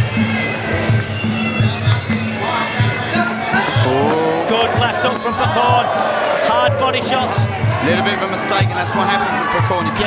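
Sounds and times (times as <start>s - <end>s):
shrill reed pipe melody: 0.0s - 4.5s
steady drum beat: 0.0s - 10.0s.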